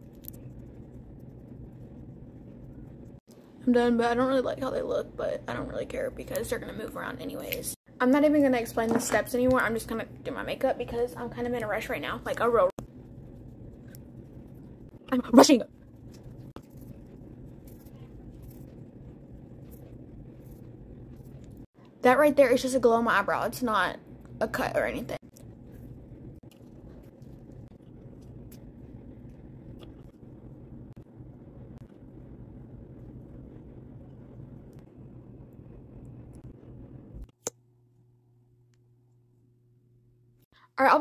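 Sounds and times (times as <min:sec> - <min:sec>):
ceiling fan hum: 0:00.0 - 0:41.0.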